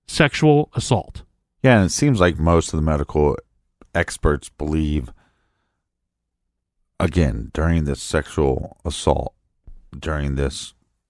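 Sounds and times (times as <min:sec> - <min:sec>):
person speaking: 0:00.0 - 0:05.2, 0:07.0 - 0:10.8
faint breath: 0:05.1 - 0:05.9.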